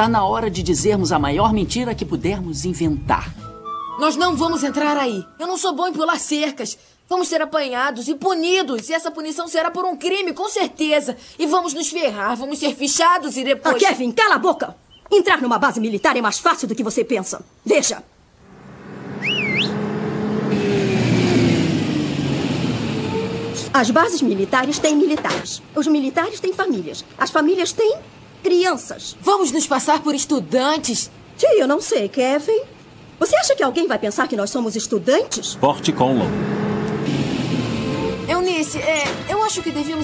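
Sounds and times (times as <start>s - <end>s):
bus engine humming: 0.0s - 6.5s, 18.3s - 40.0s
bird chirp: 14.4s - 15.2s, 18.9s - 19.8s
road hiss: 18.2s - 24.6s, 26.6s - 31.8s, 32.7s - 40.0s.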